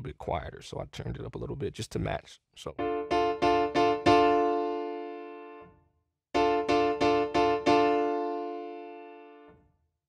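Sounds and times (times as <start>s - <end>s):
piano chord ringing: 2.8s - 5.7s, 6.4s - 9.5s.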